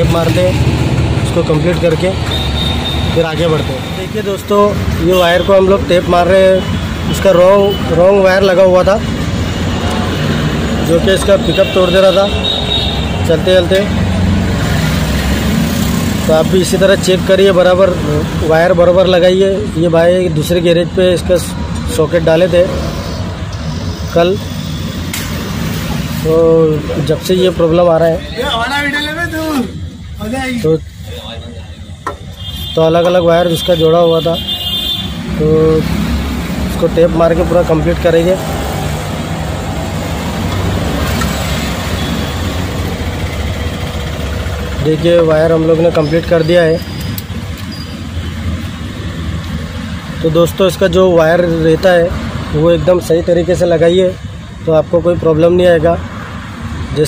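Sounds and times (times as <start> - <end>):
vehicle engine idling: 42.0 - 46.0.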